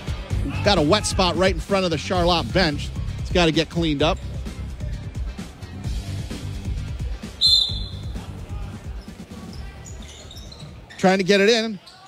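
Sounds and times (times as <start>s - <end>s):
referee's whistle blast: 7.4s - 8.1s.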